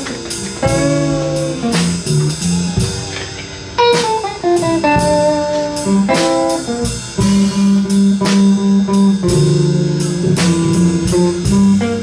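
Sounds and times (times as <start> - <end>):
drums: 0.0 - 12.0
guitar melody: 0.0 - 12.0
upright double bass: 0.0 - 12.0.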